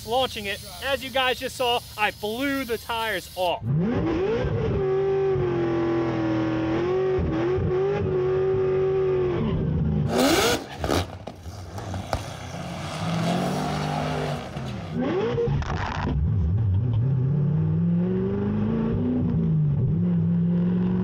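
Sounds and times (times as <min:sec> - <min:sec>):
car engine revving: 0:03.6 - 0:21.0.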